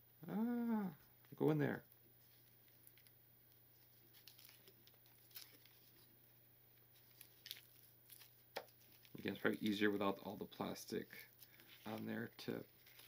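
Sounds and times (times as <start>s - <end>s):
plastic film rustling: 1.4s - 13.0s.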